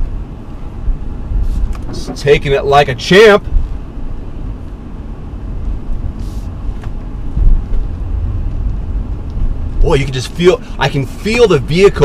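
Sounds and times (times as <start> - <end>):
vehicle rumbling over rough ground: 0.0 - 12.0.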